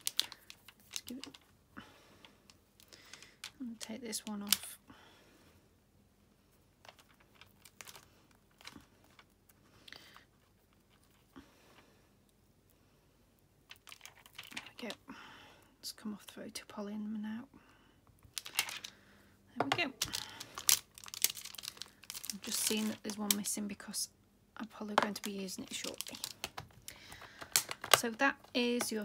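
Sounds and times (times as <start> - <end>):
plastic clicks and crinkles: 0.0 - 1.6, 2.2 - 4.8, 6.8 - 11.3, 13.7 - 15.0, 18.1 - 19.0, 19.6 - 23.6, 24.9 - 29.0.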